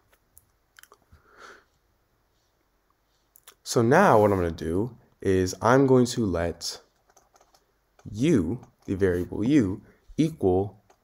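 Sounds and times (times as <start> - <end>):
faint sniff through the nose: 1.2 - 3.4.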